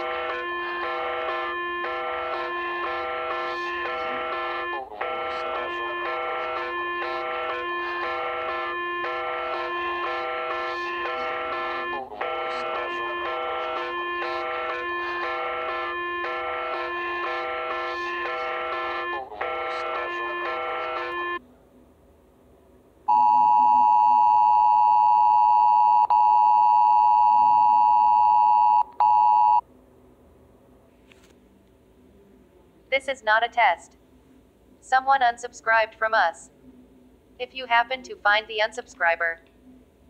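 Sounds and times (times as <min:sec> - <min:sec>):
loud steady alert tone: 0:00.0 - 0:21.4
repeating electronic tone melody: 0:00.0 - 0:21.4.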